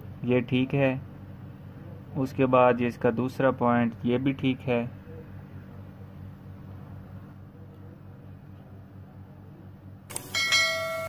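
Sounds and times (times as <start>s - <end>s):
low steady hum: 0.0s - 11.0s
bell-like chime: 10.4s - 11.0s.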